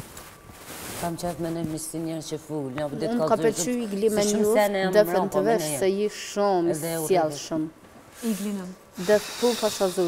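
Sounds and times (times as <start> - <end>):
drawn-out high hiss: 8.2 - 10.0.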